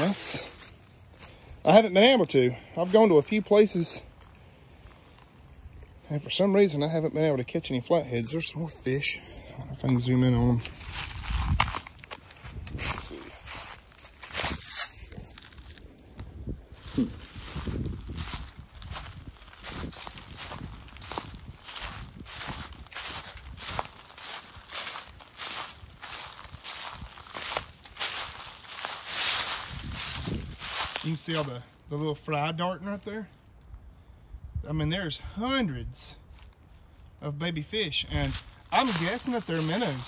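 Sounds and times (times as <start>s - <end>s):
footsteps on dry leaves: 0.0s - 6.0s, 9.9s - 33.7s, 36.2s - 40.0s.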